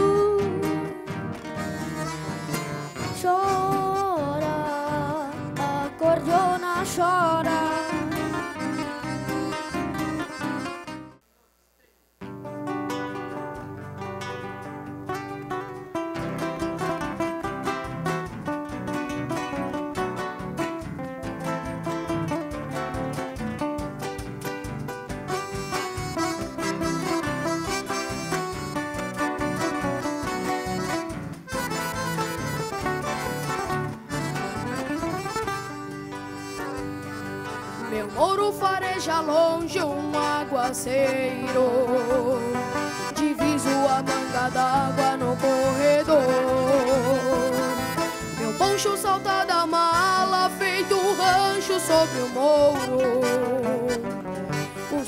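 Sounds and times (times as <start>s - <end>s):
accordion: 0.0s - 11.2s, 12.2s - 55.0s
acoustic guitar picking: 0.0s - 11.2s, 12.2s - 55.0s.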